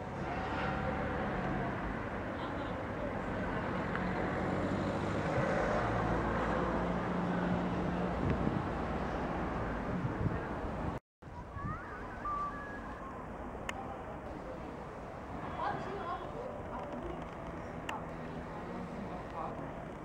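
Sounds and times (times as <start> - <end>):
noisy street background: 0.0 - 20.0.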